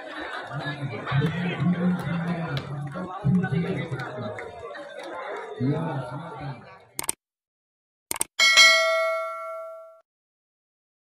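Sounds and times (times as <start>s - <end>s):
notification bell ding: 8.4s - 10.0s.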